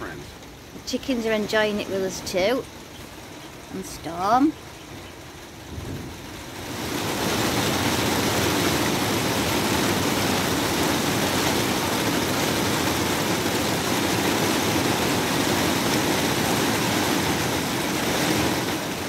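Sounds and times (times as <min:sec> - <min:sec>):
heavy rain: 0:00.0 - 0:19.0.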